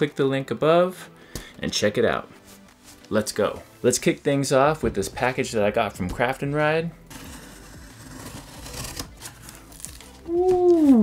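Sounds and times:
knife rasping through tape: 0:07.1 - 0:10.1.

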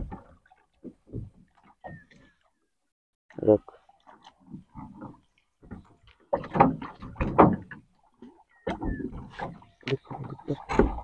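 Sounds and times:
water splashing at boat side: 0:00.0 - 0:02.6, 0:03.3 - 0:11.0
knocks on wooden hull: 0:05.7 - 0:07.8.

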